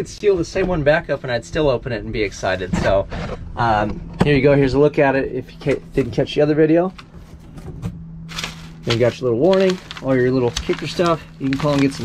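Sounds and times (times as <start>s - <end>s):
plastic wrap and paper crinkling: 8.3s - 12.0s.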